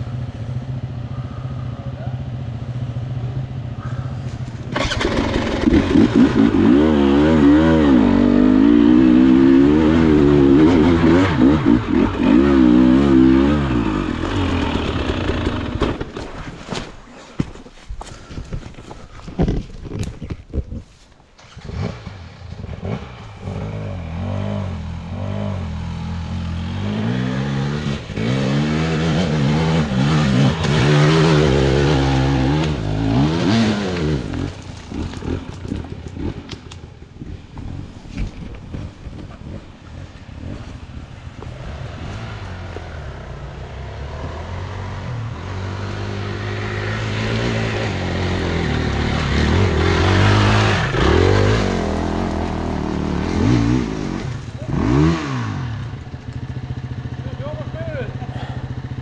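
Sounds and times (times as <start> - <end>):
dirt bike engine revving: 4.6 - 16.5, 21.4 - 36.6, 38.7 - 59.0.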